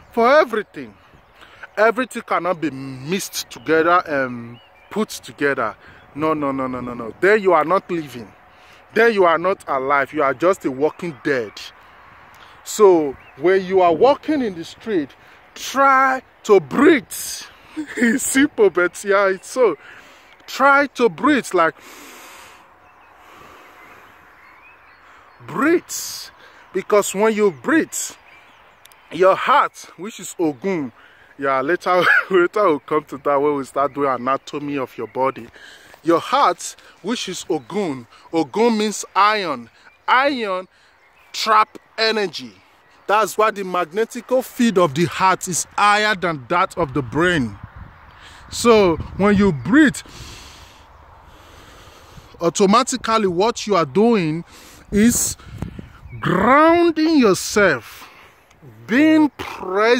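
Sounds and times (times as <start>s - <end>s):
wind rumble on microphone: 11.5s - 15.5s, 46.6s - 53.5s, 54.8s - 56.9s
man breathing in deeply: 19.8s - 20.4s, 21.8s - 24.4s, 35.5s - 36.0s, 50.0s - 52.4s.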